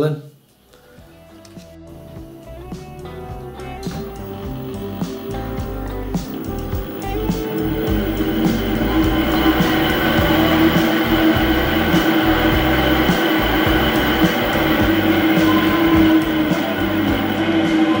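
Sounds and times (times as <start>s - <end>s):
electric hub motor humming: 1.4s - 18.0s.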